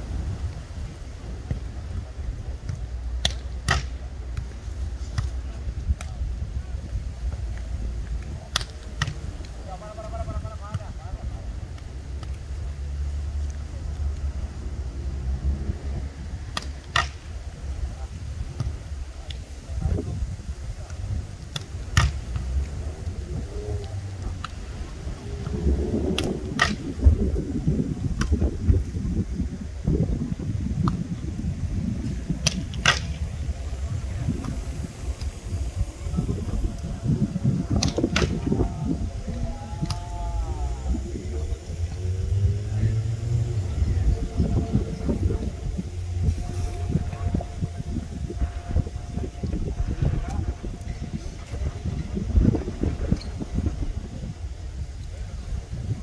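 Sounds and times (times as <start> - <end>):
faint voices: 0.0 - 56.0
steady low rumble: 0.0 - 56.0.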